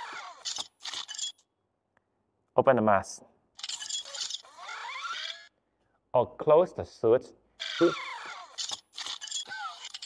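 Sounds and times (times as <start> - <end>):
servo motors whirring: 0.0 - 1.4, 3.6 - 5.5, 7.6 - 10.0.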